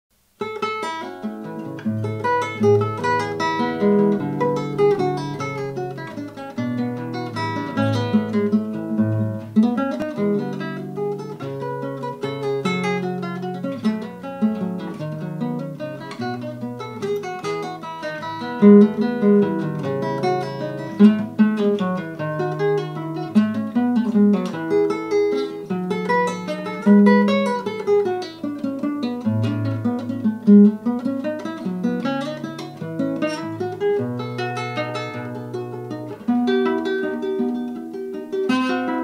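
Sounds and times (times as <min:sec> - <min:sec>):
solo acoustic guitar: 0:00.2 - 0:39.0.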